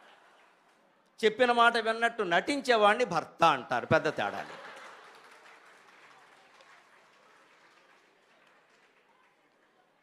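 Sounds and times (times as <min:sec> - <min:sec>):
faint audience applause: 0:00.0 - 0:00.9, 0:03.9 - 0:10.0.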